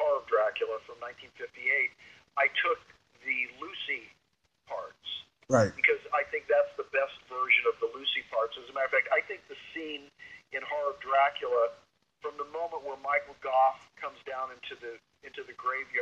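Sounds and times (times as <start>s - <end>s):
man talking: 5.5s - 5.8s.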